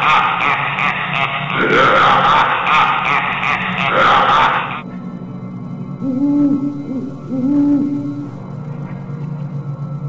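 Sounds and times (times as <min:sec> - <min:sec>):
owl-like hooting: 0:00.0 - 0:05.0, 0:05.8 - 0:09.2
eerie background music: 0:00.0 - 0:10.0.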